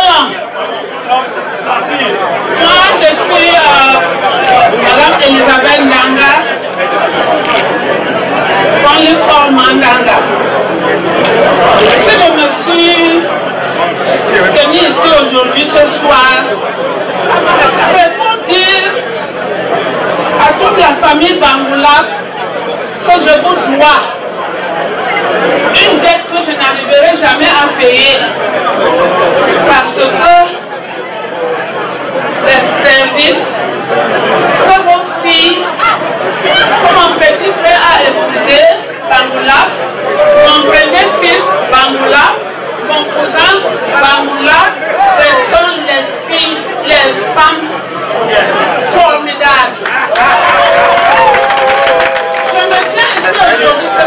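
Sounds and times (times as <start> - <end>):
woman speaking through microphone: 0.0 - 0.4, 1.9 - 6.6, 8.6 - 10.4, 11.8 - 13.4, 14.2 - 16.6, 17.6 - 19.0, 20.4 - 22.2, 23.0 - 24.2, 25.7 - 28.4, 29.6 - 30.7, 32.4 - 33.6, 34.6 - 47.8, 48.7 - 49.8, 52.4 - 54.0
crowd chatter in large room: 0.0 - 54.0.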